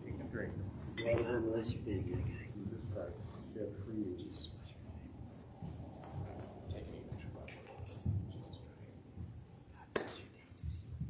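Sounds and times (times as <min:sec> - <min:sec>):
low room hum: 0:00.0 - 0:11.0
people rustling and shuffling: 0:00.0 - 0:11.0.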